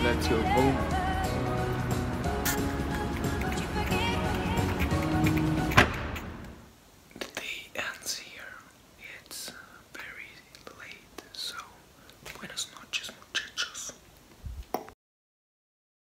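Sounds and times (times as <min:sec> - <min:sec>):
background music: 0:00.0 - 0:06.6
sharp knock: 0:05.8 - 0:06.4.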